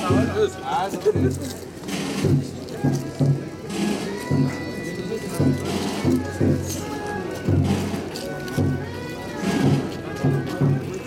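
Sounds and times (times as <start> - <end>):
people's voices: 0.0 - 11.0
procession music with low beat: 0.0 - 11.0.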